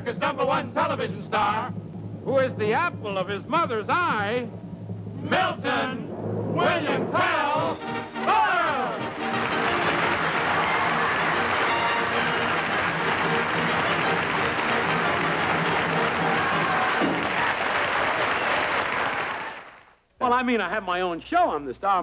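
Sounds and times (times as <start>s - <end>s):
band music: 0.0s - 18.3s
audience applause: 9.0s - 19.9s.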